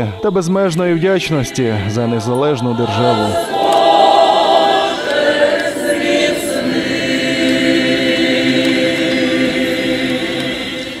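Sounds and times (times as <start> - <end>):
choir singing sustained chords: 0.0 - 11.0.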